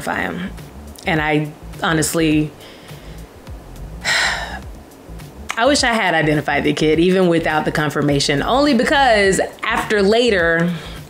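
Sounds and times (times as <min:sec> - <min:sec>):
woman gasping breath: 0:02.6 - 0:03.3, 0:04.0 - 0:04.7.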